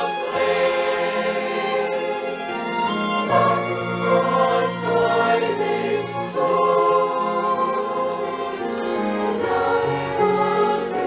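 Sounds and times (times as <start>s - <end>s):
cellos: 0.0s - 11.0s
choir singing held chords: 0.0s - 11.0s
keyboard: 0.0s - 11.0s.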